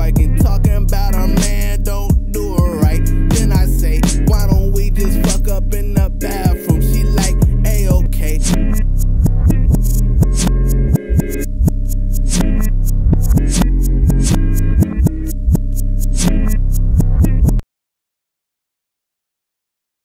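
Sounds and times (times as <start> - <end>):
deep bass notes: 0.0 - 17.6
hi-hat clicks: 0.0 - 17.6.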